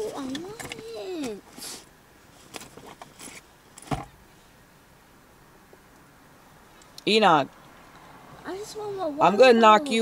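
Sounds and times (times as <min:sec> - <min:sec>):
objects handled clicks and rustles: 0:00.0 - 0:01.6, 0:02.4 - 0:04.1
dull thump: 0:03.8 - 0:04.2.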